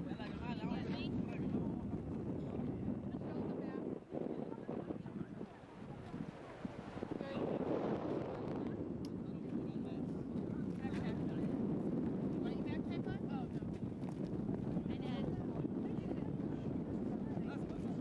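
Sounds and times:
faint voices talking: 0.0 - 18.0
wind buffeting microphone: 0.0 - 18.0.

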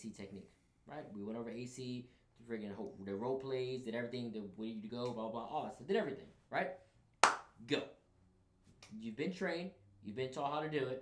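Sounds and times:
man speaking: 0.0 - 6.8
hand clap: 7.2 - 7.6.

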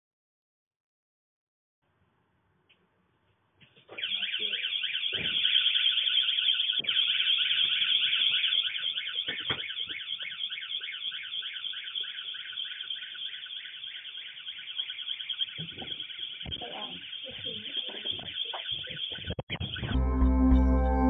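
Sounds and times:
warbling van alarm siren: 3.9 - 21.0.

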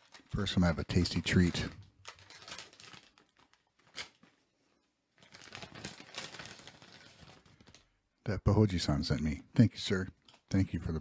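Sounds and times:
snack wrapper crinkling: 0.0 - 4.5, 5.1 - 8.0.

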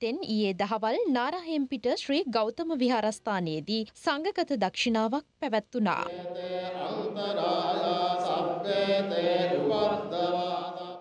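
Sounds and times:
voices chanting long tones: 6.0 - 11.0.

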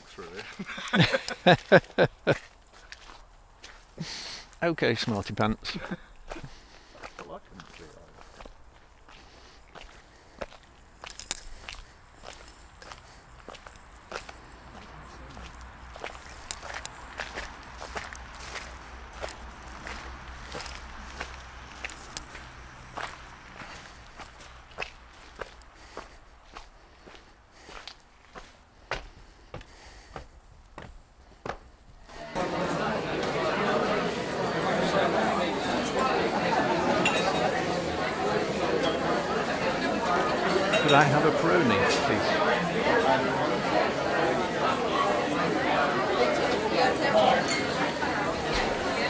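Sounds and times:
footsteps in car park: 0.1 - 49.0
person laughing: 0.5 - 2.5.

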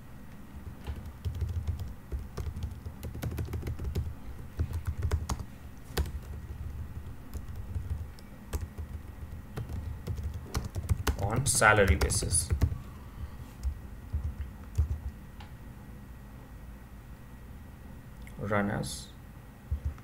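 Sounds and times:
typing on computer keyboard: 0.6 - 12.8, 13.6 - 15.2.

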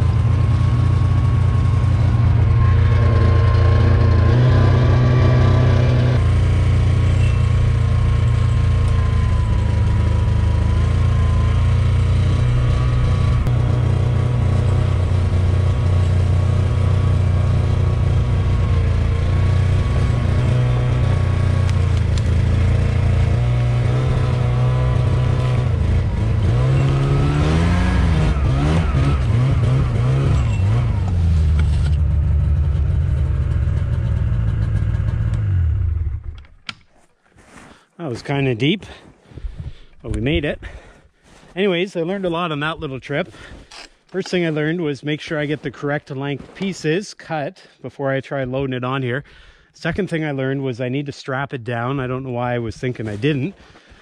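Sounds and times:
snowmobile engine running: 0.0 - 36.4.

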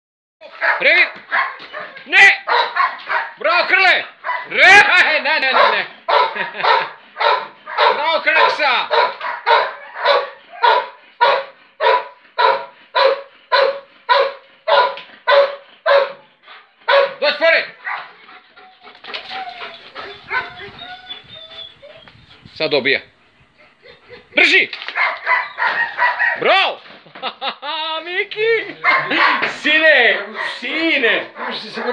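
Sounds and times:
dog barking: 0.4 - 3.4, 4.2 - 4.6, 5.5 - 16.2, 16.8 - 17.2, 17.8 - 18.2, 20.0 - 20.7, 24.9 - 26.4, 28.8 - 31.9.

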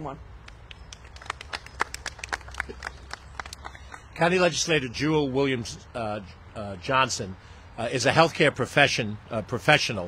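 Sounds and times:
small group applauding: 0.5 - 4.1.

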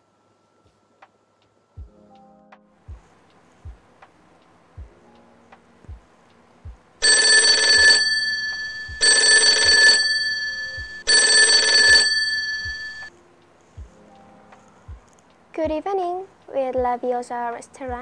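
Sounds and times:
phone ringtone: 7.0 - 13.1.

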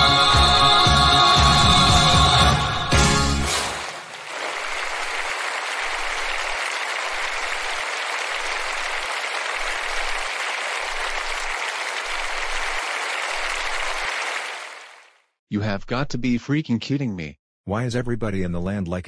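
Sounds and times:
crowd applauding: 3.2 - 15.2.

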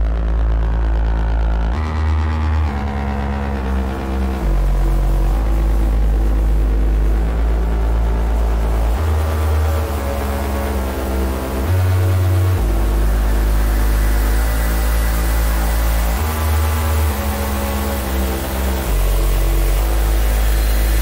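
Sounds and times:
synthesizer music with heavy bass: 0.0 - 21.0.

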